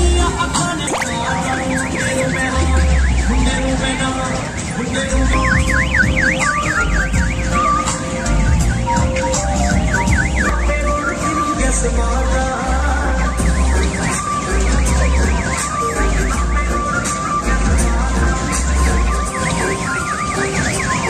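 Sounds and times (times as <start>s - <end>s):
amplified music with heavy bass: 0.0s - 4.4s, 5.0s - 21.0s
electronic siren warbling: 0.8s - 4.7s, 5.3s - 11.5s, 12.9s - 21.0s.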